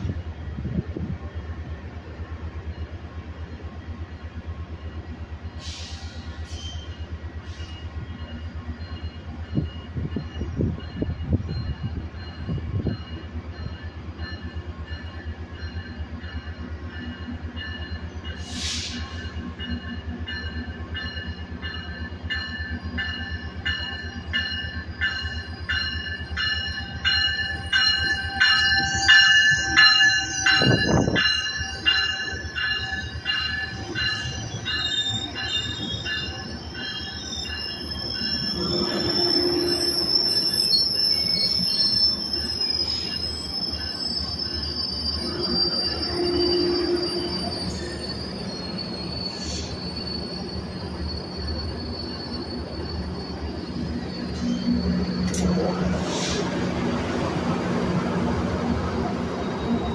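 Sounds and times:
diesel locomotive engine: 0.0 - 59.9
train bell ringing: 2.5 - 57.0
train wheels squealing: 2.5 - 59.9.

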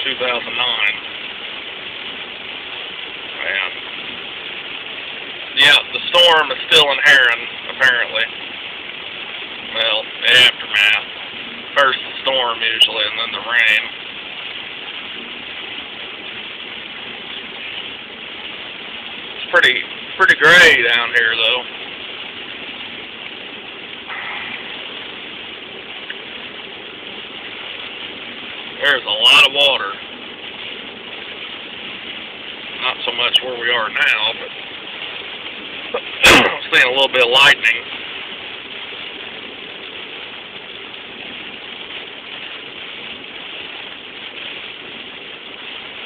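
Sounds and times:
heavy rain on a car: 0.0 - 46.0
tyres on wet road: 0.0 - 46.0.

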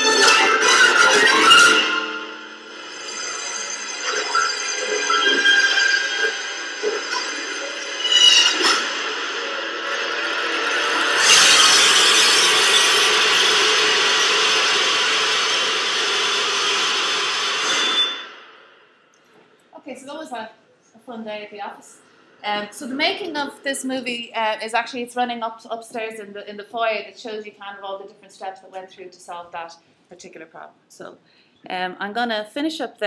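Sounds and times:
music: 0.0 - 13.6
loud steady noise: 0.0 - 18.9.

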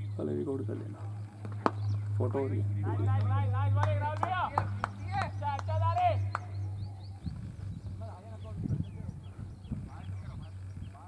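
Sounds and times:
people talking: 0.0 - 1.1, 2.2 - 7.2, 7.9 - 11.0
steady low hum: 0.0 - 11.0.

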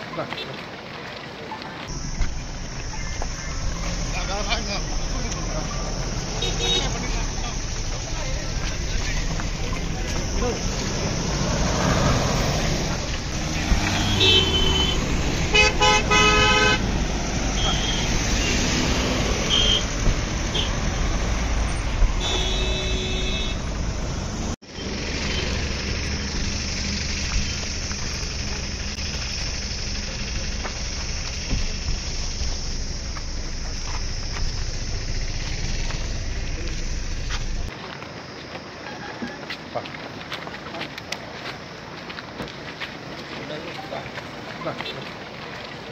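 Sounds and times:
vehicle noise: 0.0 - 45.9
car horns honking: 6.2 - 7.8, 13.4 - 24.0.

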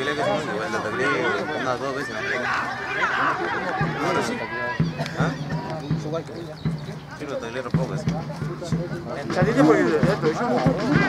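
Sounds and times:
indistinct voices calling out: 0.0 - 7.2, 9.3 - 11.0
dull low thumps: 3.8 - 11.0.

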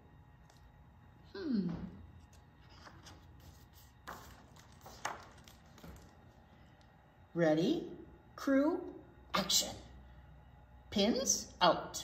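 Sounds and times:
book pages turning: 2.2 - 6.4.

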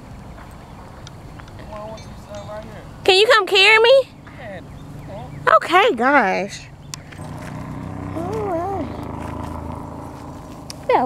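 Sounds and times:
engine hum: 0.0 - 11.0.

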